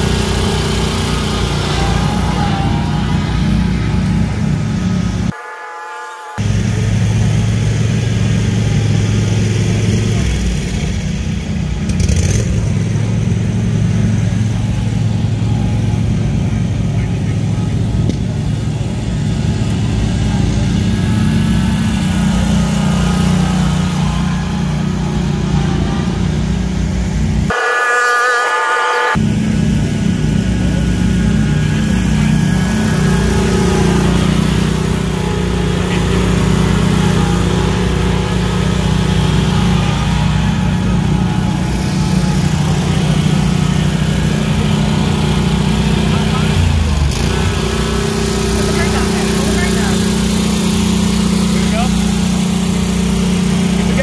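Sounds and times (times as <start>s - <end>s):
different pitched sound: 0.0s - 11.1s, 12.2s - 52.6s
mower engines humming: 0.0s - 54.0s.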